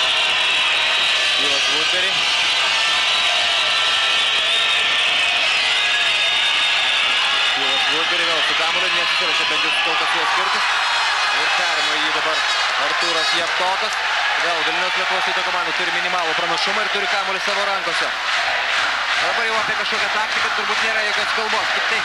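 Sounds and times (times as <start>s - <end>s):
crowd chanting and cheering: 0.0s - 22.0s.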